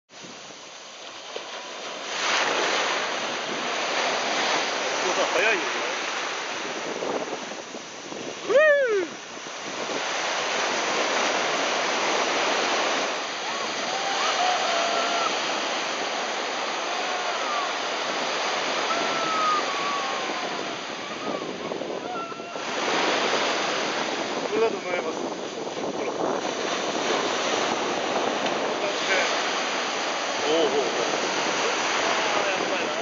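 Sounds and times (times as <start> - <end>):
small waves breaking: 0.1 - 33.0
loud cry rising and falling: 13.4 - 15.4, 16.8 - 17.9, 18.8 - 22.6.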